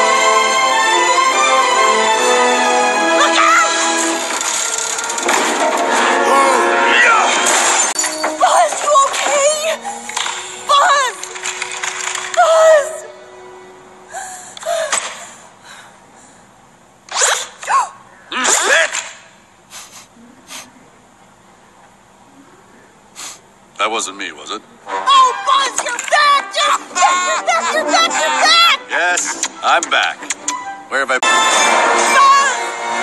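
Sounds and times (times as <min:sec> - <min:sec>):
woman sobbing: 0:14.1 - 0:16.0.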